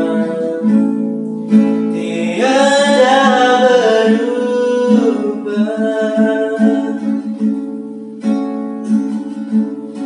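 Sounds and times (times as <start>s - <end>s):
acoustic guitar strumming: 0.0s - 10.0s
man singing worship song: 1.9s - 7.2s.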